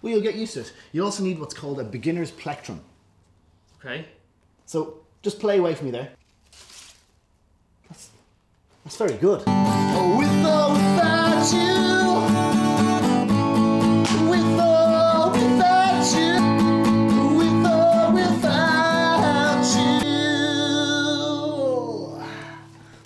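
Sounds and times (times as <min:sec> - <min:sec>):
man singing: 0:09.5 - 0:22.6
acoustic guitar strumming: 0:09.5 - 0:22.7.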